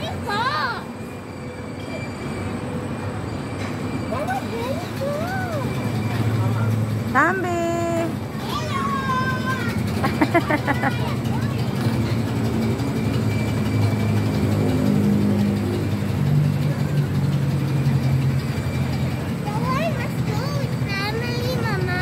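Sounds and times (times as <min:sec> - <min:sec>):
carousel droning: 0:00.0 - 0:22.0.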